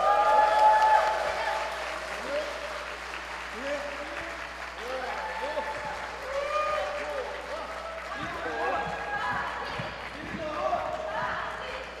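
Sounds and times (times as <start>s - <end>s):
indistinct voices in a hall: 0.0s - 12.0s.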